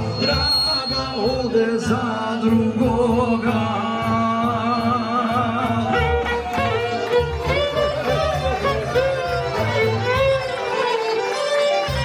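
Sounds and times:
man singing: 0.0 - 6.8
folk music backing with bass: 0.0 - 12.0.

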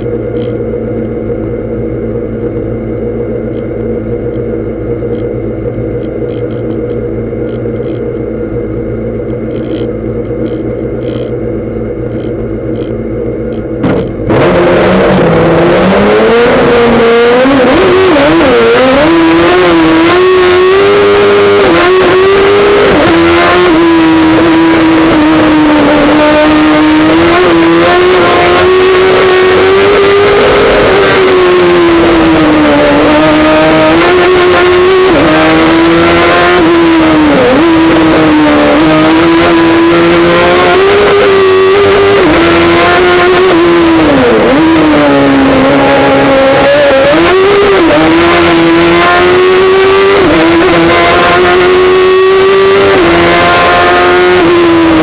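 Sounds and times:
race car engine at high revs: 0.0 - 55.0.

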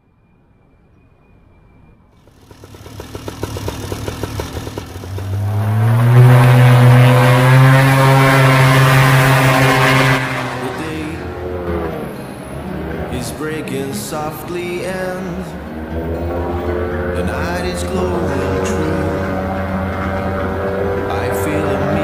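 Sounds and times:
two-stroke paramotor engine revving: 2.2 - 22.0.

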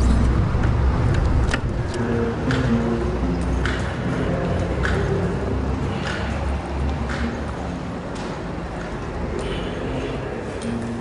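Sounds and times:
low outdoor rumble: 0.0 - 10.4.

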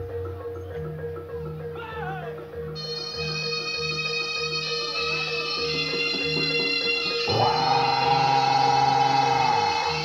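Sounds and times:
ensemble accompaniment music: 0.0 - 10.0.

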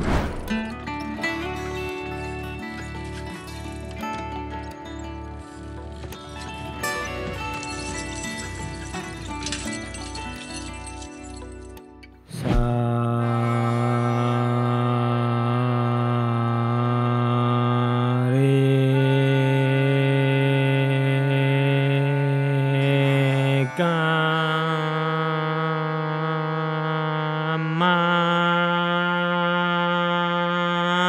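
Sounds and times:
man singing a scale: 12.6 - 31.0.

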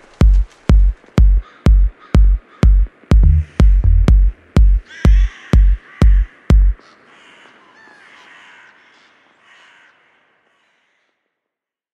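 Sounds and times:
soft hiss: 0.0 - 9.4
faint crow caws: 0.5 - 11.4.

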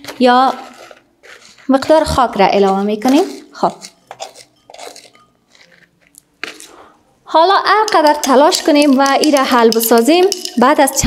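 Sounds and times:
soil gritty scraping: 0.0 - 6.9.

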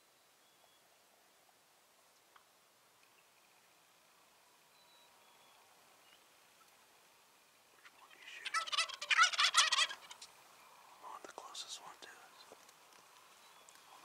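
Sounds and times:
turkey gobbling: 7.8 - 10.3.

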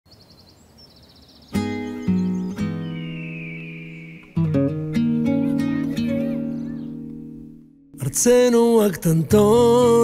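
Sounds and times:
trilling bird chirps: 0.1 - 4.8, 5.5 - 7.4
acoustic guitar chord strummed: 1.6 - 10.0.

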